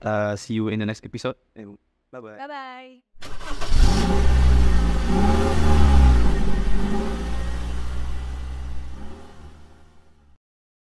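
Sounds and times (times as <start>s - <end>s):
car engine revving: 3.2s - 10.4s.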